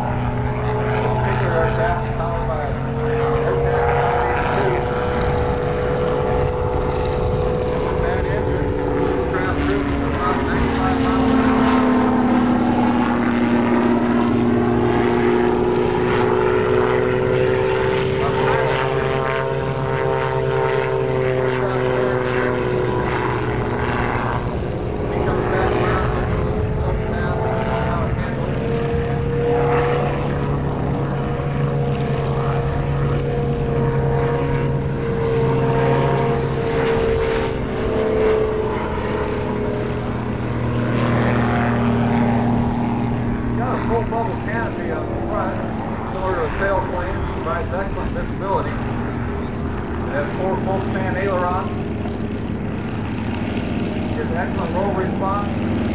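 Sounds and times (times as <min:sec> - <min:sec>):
aircraft engine and propeller droning: 0:00.0 - 0:55.9.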